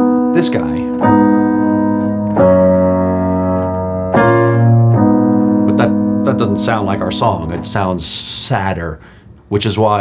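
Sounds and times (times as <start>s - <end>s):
sustained piano chords: 0.0s - 8.6s.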